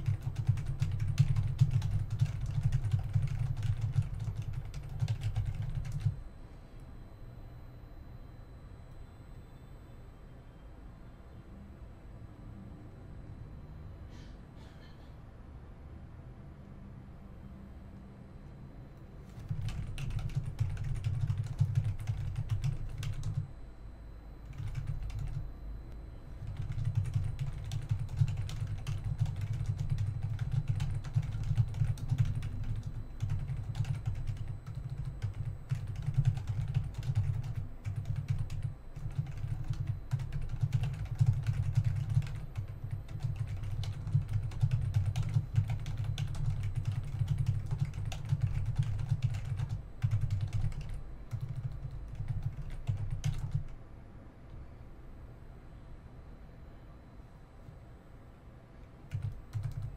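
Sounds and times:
fast typing on keyboard: 0.0 - 6.2, 19.3 - 23.5, 24.4 - 25.4, 26.4 - 53.8, 59.1 - 59.9.

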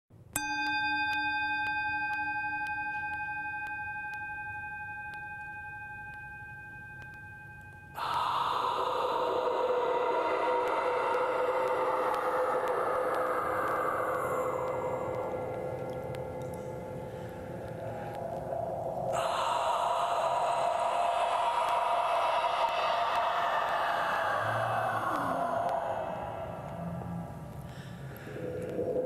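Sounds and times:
bell-like struck metal tone: 0.4 - 7.6.

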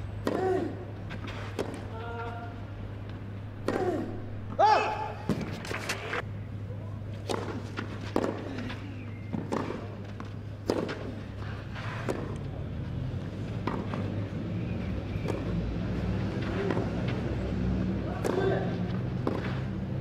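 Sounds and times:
steady low hum: 0.0 - 20.0
tennis ball hit by rackets: 0.2 - 2.3, 3.6 - 5.9, 7.2 - 11.3, 11.9 - 12.4, 13.6 - 14.1, 15.2 - 15.6, 16.3 - 17.3, 18.0 - 20.0.

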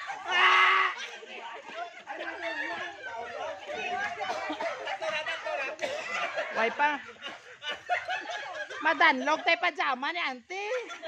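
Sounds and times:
overlapping chatter of voices: 0.0 - 11.0.

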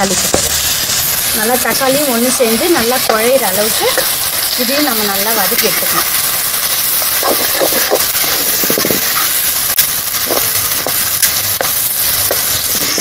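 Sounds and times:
vegetables sizzling in hot oil: 0.0 - 13.0.

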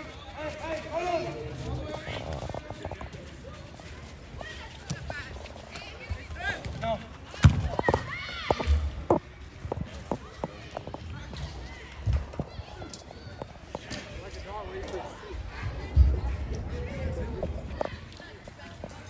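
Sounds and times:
ball being kicked thud: 7.4 - 8.0.

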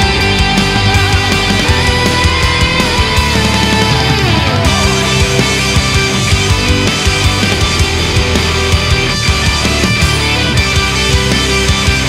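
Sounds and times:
loud rock music: 0.0 - 12.0.

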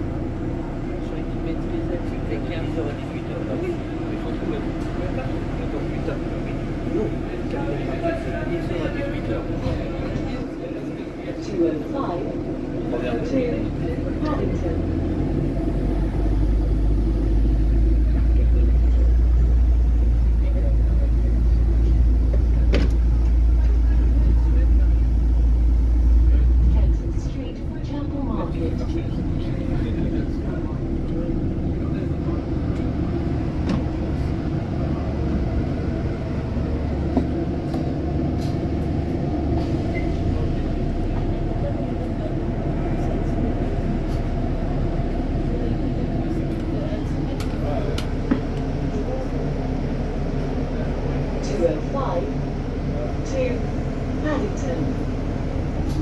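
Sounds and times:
bus engine drone: 0.0 - 56.0
road rumble: 0.0 - 56.0.

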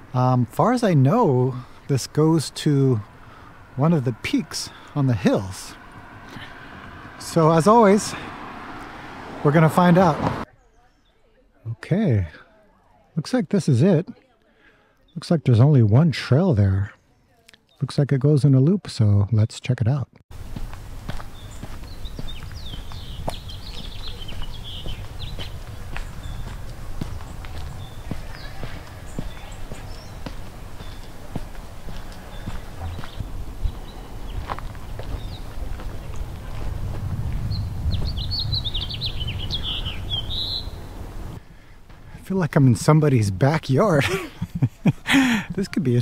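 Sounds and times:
small birds chirping: 10.4 - 11.6, 19.3 - 46.0
footsteps on dirt trail: 20.3 - 40.8, 41.4 - 42.2
low rumble: 20.4 - 41.4.

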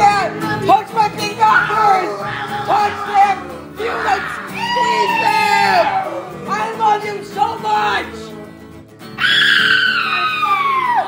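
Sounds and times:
backing music: 0.0 - 11.0
high-pitched scream: 3.8 - 6.4, 9.2 - 11.0.

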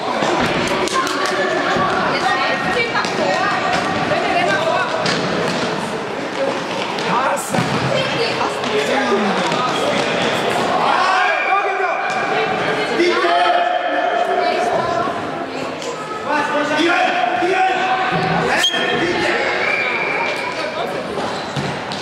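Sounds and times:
shouting voices echoing: 8.2 - 20.7.

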